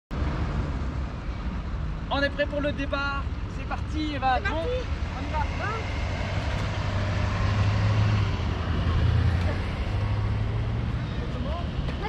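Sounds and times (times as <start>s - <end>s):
low outdoor rumble: 0.2s - 12.0s.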